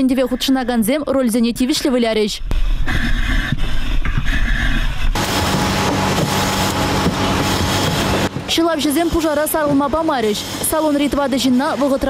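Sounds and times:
engine drone with hiss: 5.2 - 12.0.

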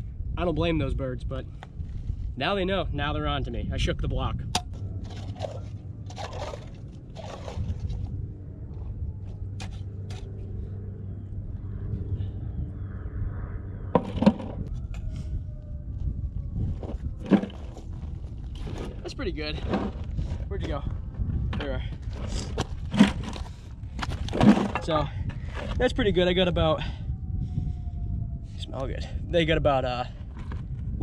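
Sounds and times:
steady low rumble: 0.0 - 31.0.

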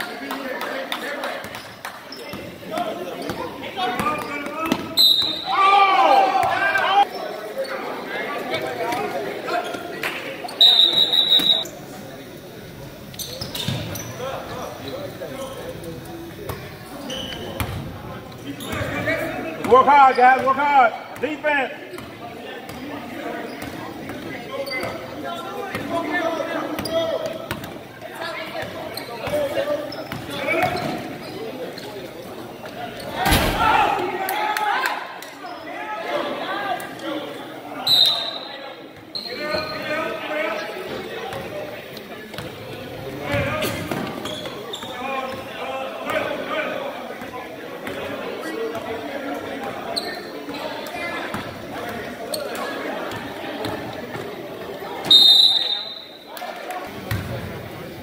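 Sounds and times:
crowd voices: 0.0 - 58.0
basketball bouncing on court: 17.5 - 17.9.

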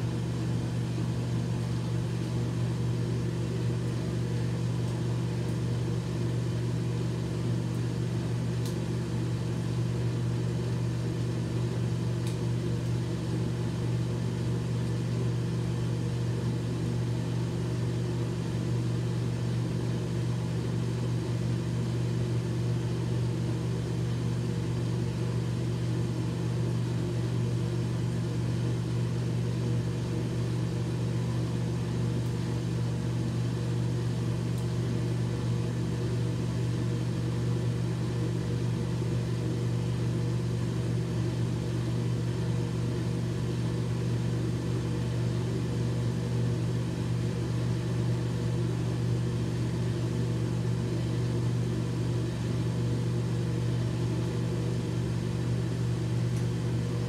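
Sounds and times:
electric fan motor humming: 0.0 - 57.0.

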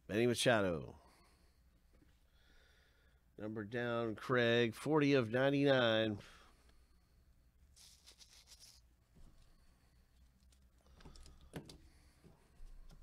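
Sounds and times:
soft clicks of card handling: 10.2 - 11.9.

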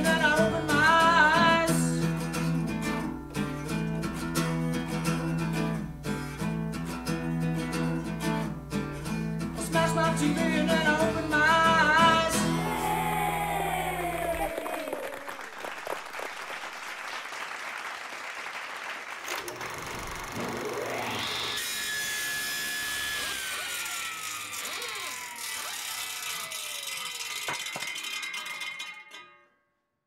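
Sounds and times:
saw blade spinning up whine: 19.4 - 27.8
rasping sawing noise: 20.4 - 27.2.

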